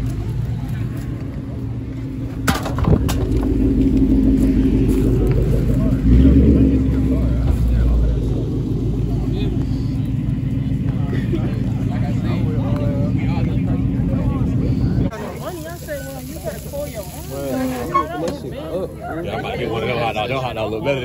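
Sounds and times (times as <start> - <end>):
car engine running: 0.0 - 15.1.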